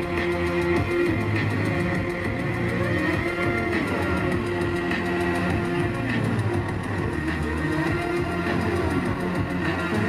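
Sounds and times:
loud electronic music with beat: 0.0s - 10.0s.

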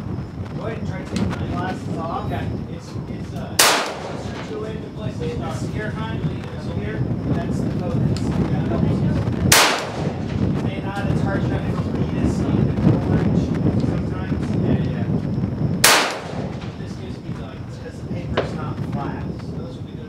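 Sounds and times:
wind rumble on microphone: 0.0s - 20.0s
rifle shots with echo: 3.6s - 4.8s, 9.5s - 10.5s, 15.8s - 17.0s.

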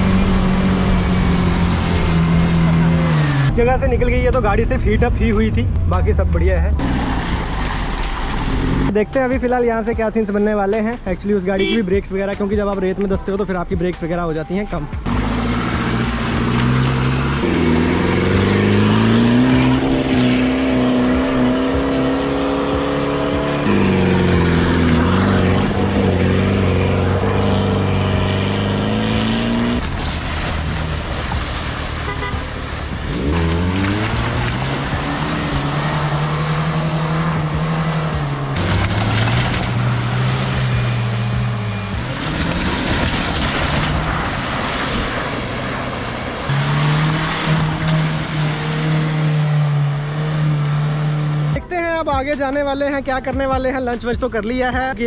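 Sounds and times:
off-road engines revving: 0.0s - 9.0s, 14.9s - 52.7s
water splashing: 6.8s - 8.9s, 29.8s - 51.2s.

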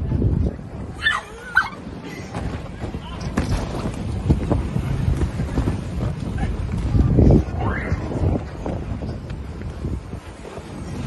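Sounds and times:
voices shouting or squealing: 0.9s - 2.0s
phone microphone jostled rumbling: 1.8s - 11.0s.

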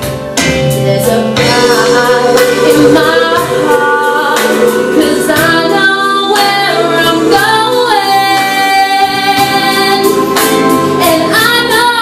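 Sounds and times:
woman singing a ballad: 0.7s - 12.0s.

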